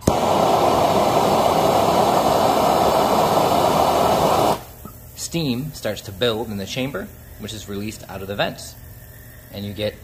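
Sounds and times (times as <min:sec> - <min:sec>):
gas torch flame rushing: 0:00.0 - 0:09.7.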